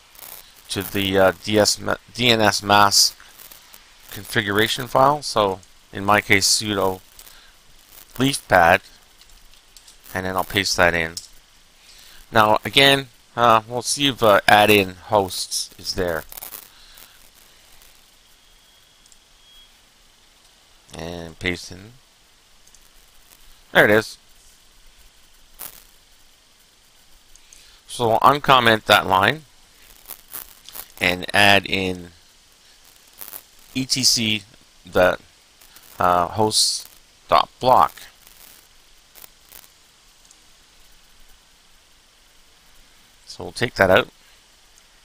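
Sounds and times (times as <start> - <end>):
microphone hiss: 0.0 - 45.0
thin high whine: 0.0 - 45.0.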